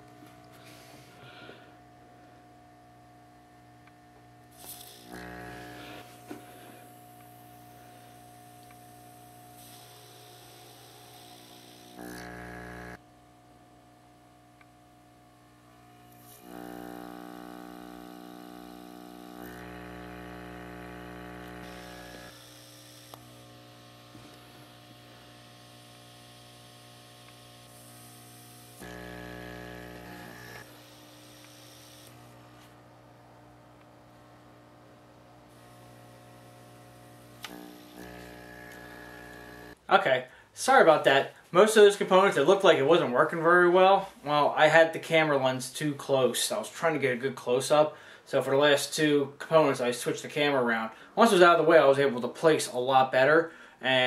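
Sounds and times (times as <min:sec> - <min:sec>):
small vacuum pump humming: 0:00.0 - 0:40.4.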